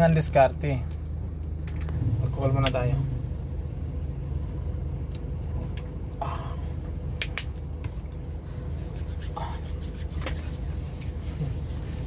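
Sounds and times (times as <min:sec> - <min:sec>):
hands rubbing together: 0:08.6 - 0:12.0.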